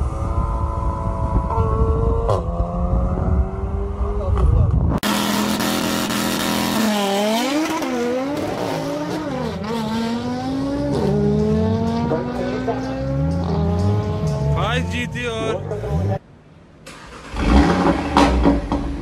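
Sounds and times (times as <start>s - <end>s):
wind noise: 0.0s - 5.0s
car engine revving on launch: 1.8s - 12.4s, 16.9s - 19.0s.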